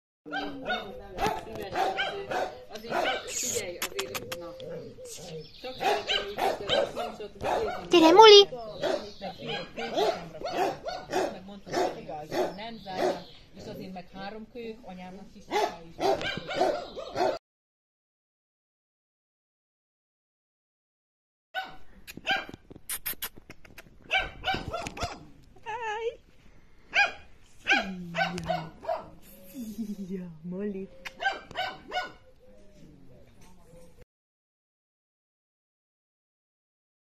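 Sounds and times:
puppy barking: 0.3s - 3.5s, 5.8s - 13.3s, 15.5s - 17.4s, 21.6s - 22.6s, 24.1s - 25.3s, 26.9s - 29.2s, 31.0s - 32.3s.

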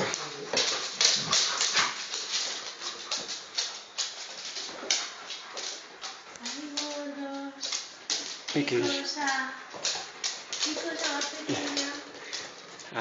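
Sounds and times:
dogs huffing: 0.0s - 7.0s
claw clicks on wooden floor: 0.0s - 12.8s
dogs scuffling: 0.0s - 13.0s.

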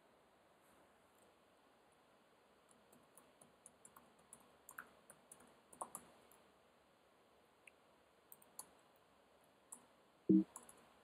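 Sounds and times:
keyboard typing clicks: 2.7s - 6.4s, 8.3s - 8.8s, 9.7s - 10.9s.

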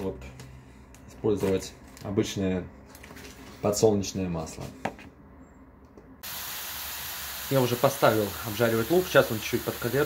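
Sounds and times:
onions sizzling in a frying pan: 6.2s - 10.0s.

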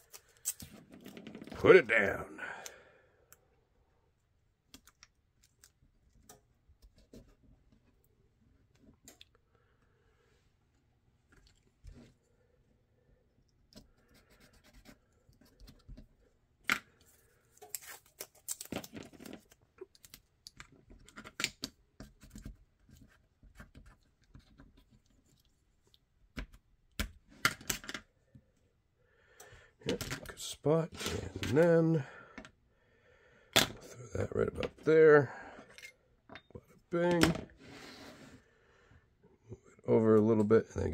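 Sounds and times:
tape tearing: 17.6s - 19.6s
taps and scratches: 19.0s - 25.5s.

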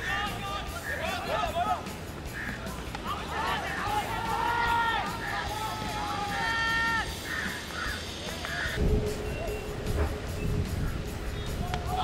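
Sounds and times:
crows cawing: 2.3s - 2.6s, 6.8s - 8.8s.

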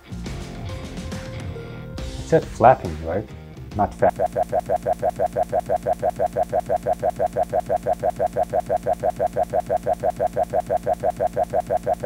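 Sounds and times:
looped stuttering spoken syllable: 3.8s - 12.0s.

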